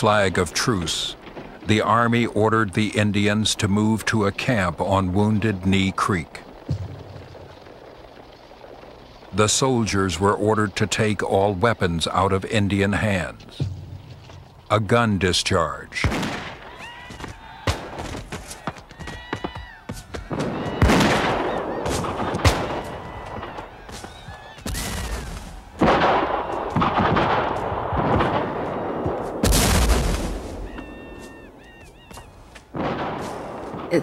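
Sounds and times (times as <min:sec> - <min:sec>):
gunshots cracking in volleys: 0:00.0 - 0:11.2, 0:16.0 - 0:18.8, 0:20.2 - 0:31.6, 0:32.7 - 0:34.0
heavy boom: 0:06.6 - 0:07.5, 0:24.7 - 0:30.7.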